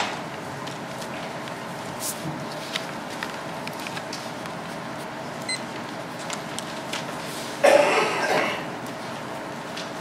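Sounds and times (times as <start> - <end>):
person coughing: 7.6 - 8.7.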